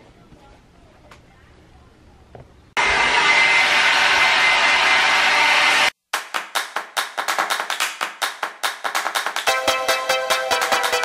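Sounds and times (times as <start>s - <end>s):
hair dryer blowing: 2.8s - 6.0s
electronic music with quick beat: 9.4s - 11.0s.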